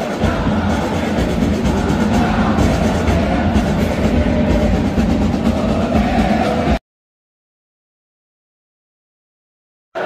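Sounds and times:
drums beating: 0.0 - 6.8
fans singing and chanting: 0.0 - 6.8.

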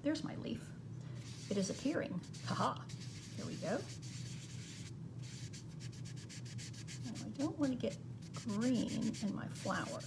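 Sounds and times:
sponge scrubbing chalk on card: 1.2 - 10.0.

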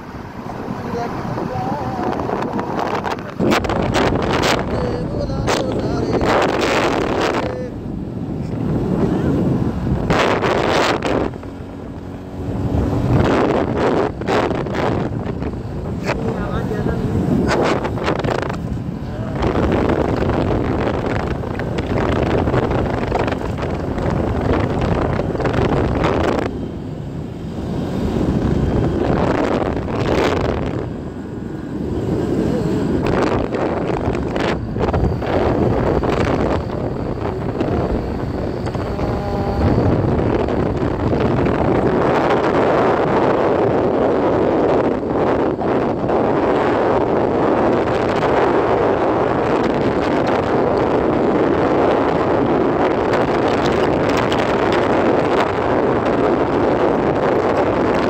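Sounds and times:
vehicle running noise: 0.0 - 58.0
wind buffeting microphone: 0.0 - 58.0.

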